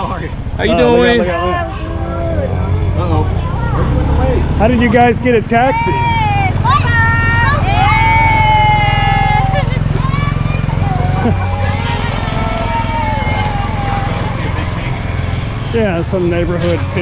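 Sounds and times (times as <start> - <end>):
motorcycle engine idling: 0.0 - 17.0
voices calling: 0.0 - 17.0.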